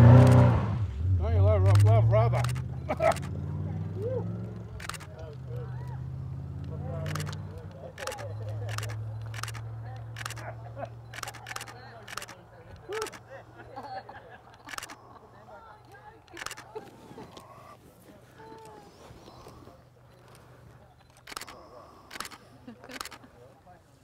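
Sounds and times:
camera shutter firing: 0.1s - 0.5s, 1.7s - 3.4s, 4.8s - 5.2s, 6.6s - 10.5s, 11.1s - 13.2s, 14.6s - 15.0s, 16.3s - 16.7s, 21.1s - 23.2s.

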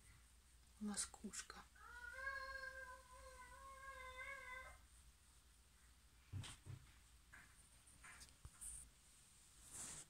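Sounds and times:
cat meowing: 1.8s - 4.8s.

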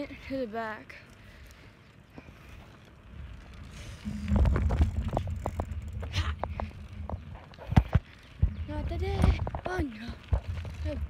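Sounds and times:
low rumble on phone microphone: 3.6s - 11.0s.

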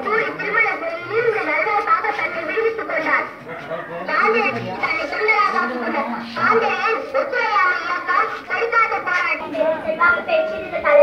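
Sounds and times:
child talking: 0.0s - 3.4s, 4.1s - 11.0s
children's voices in background: 0.0s - 11.0s.

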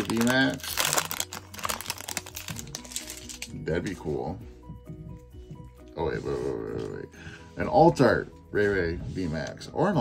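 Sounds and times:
foil wrapper crinkling: 0.0s - 3.5s.

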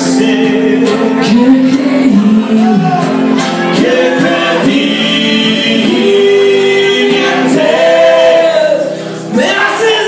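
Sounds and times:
acoustic guitar: 0.0s - 10.0s
person singing: 0.0s - 10.0s.

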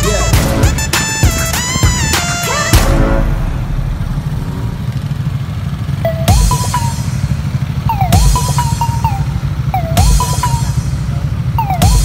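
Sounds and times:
motorcycle engines rumbling: 0.0s - 12.0s.

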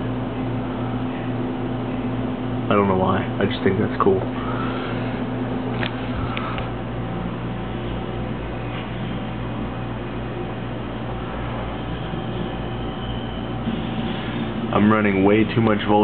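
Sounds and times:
equipment hum and hiss: 0.0s - 16.0s.

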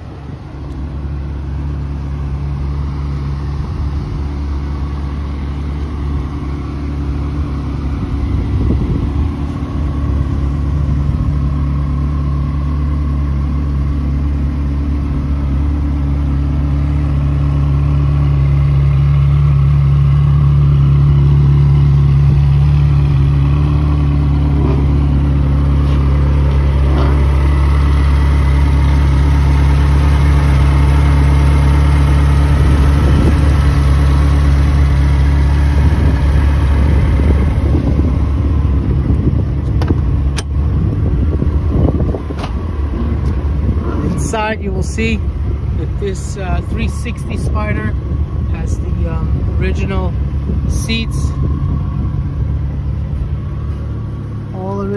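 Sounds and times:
car engine idling: 0.0s - 54.9s.

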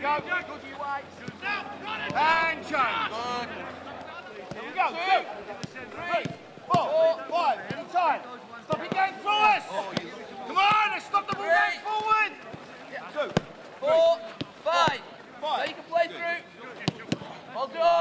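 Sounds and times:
football being kicked: 1.2s - 2.4s, 4.4s - 4.8s, 5.6s - 6.9s, 7.6s - 7.9s, 8.7s - 9.0s, 13.3s - 13.6s, 16.8s - 17.3s
men shouting: 1.3s - 4.0s.

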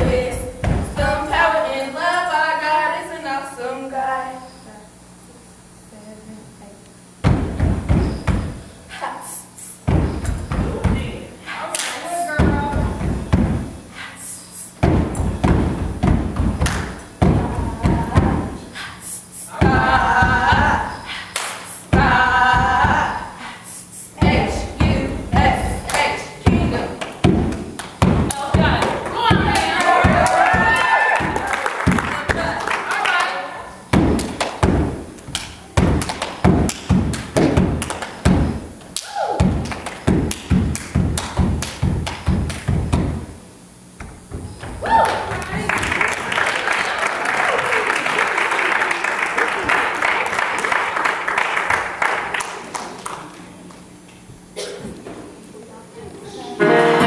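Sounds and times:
heavy thumping low beat: 0.0s - 1.4s, 7.2s - 8.7s, 9.8s - 11.3s, 12.4s - 13.9s, 14.8s - 18.7s, 19.6s - 20.9s, 21.9s - 23.3s, 24.2s - 32.5s, 33.9s - 38.8s, 39.4s - 45.7s
gospel choir singing: 56.6s - 57.0s
music: 56.6s - 57.0s.

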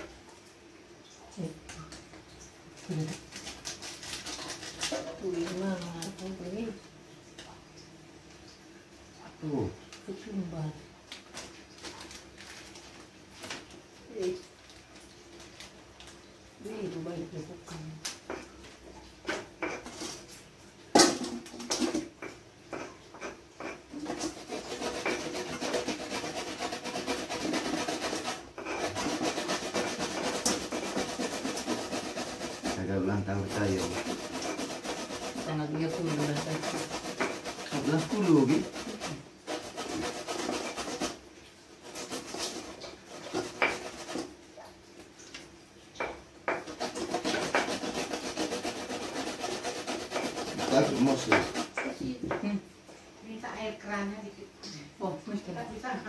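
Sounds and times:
grating on metal grater: 3.0s - 6.5s, 22.7s - 41.2s, 41.8s - 44.3s, 46.5s - 52.0s
pestle grinding in mortar: 21.0s - 41.2s, 41.8s - 44.4s, 46.0s - 52.4s.

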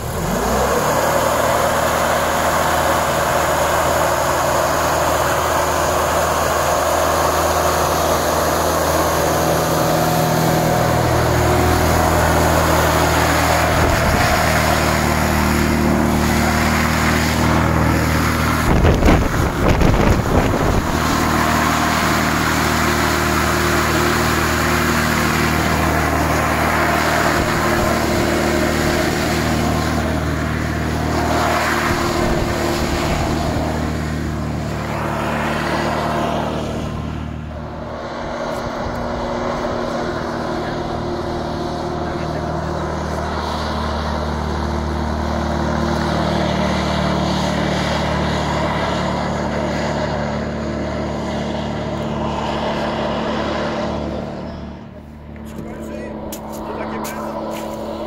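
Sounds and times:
hovercraft engine and fan: 0.0s - 58.0s.

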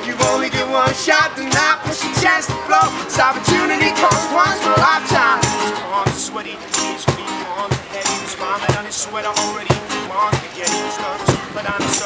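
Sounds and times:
acoustic guitars strummed hard: 0.0s - 12.0s
man singing: 0.0s - 12.0s.

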